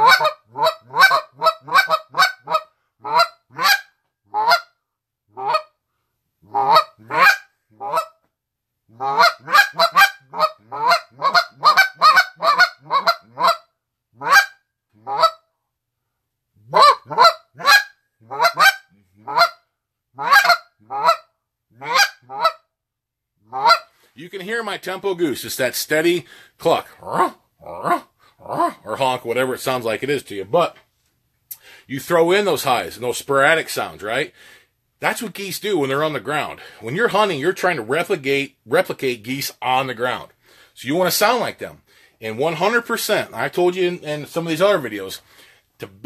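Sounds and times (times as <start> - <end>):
goose call clucks and honks: 0.0 - 4.7, 5.4 - 5.7, 6.5 - 8.2, 8.9 - 15.4, 16.6 - 19.6, 20.2 - 22.6, 23.5 - 23.9.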